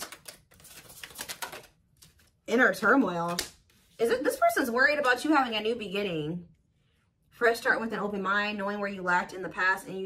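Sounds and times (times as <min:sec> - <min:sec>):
cards being shuffled: 0:00.0 - 0:02.4.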